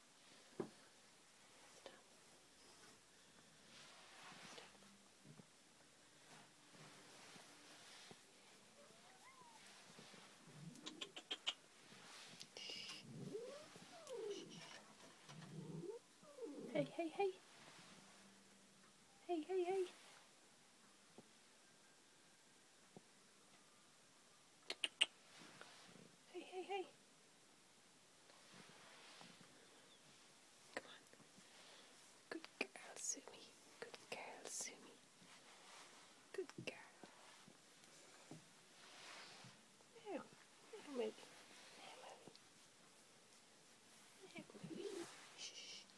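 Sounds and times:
rustling: 0.0 - 19.1, 28.2 - 45.9
cat yowling: 8.8 - 9.7, 13.3 - 14.6
person whispering: 12.5 - 14.8, 16.6 - 17.4, 19.2 - 20.0, 26.3 - 26.9, 30.7 - 31.1, 32.3 - 35.0, 36.3 - 37.1, 40.0 - 42.4, 44.2 - 45.9.

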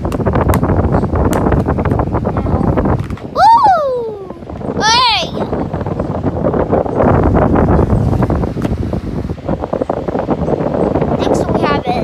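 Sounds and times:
fan wind buffeting microphone: 0.0 - 12.0.

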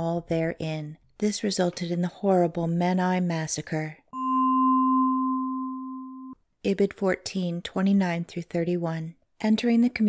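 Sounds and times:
steady pure tone: 4.2 - 6.4.

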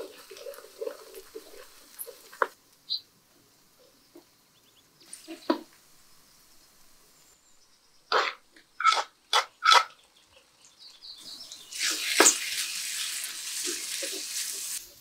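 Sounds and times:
onions sizzling in oil: 0.0 - 3.0, 11.1 - 15.0.

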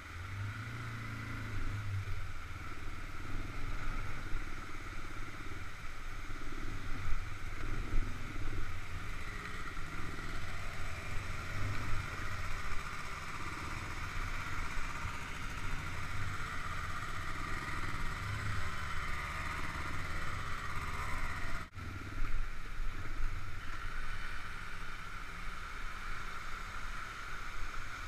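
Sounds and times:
atv engine running: 0.0 - 28.0.

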